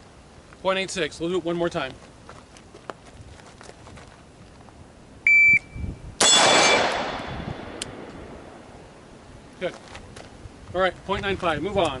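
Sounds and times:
shot timer beep: 0:05.3 - 0:05.8
rifle shot echoing: 0:06.2 - 0:08.7.

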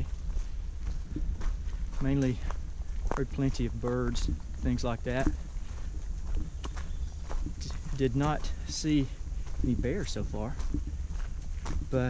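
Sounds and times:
footsteps on forest trail: 0:00.0 - 0:12.0
low rumble: 0:00.0 - 0:12.0.

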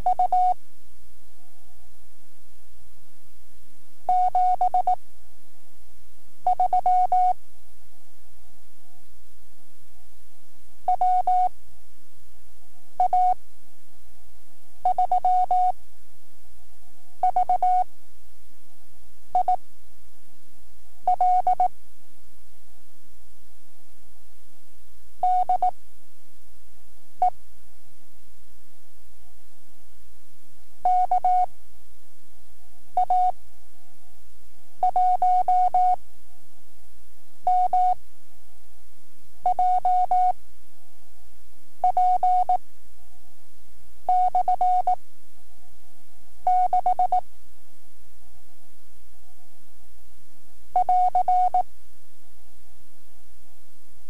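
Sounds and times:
morse code beeps: 0:21.1 - 0:21.7, 0:46.5 - 0:47.2.

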